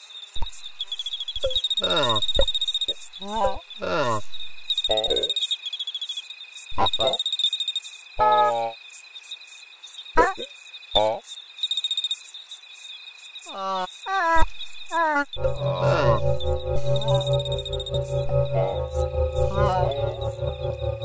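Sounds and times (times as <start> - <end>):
cricket-like chirping: 0.0 - 21.0
high whine: 0.4 - 4.8, 14.4 - 21.0
sustained low musical tones: 0.4 - 4.8, 14.4 - 21.0
wordless gliding vocal sounds: 1.8 - 2.3, 15.4 - 21.0.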